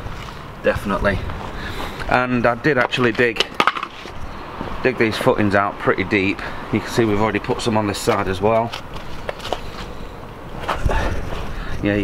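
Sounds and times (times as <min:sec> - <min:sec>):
footsteps: 0:08.1 - 0:10.0.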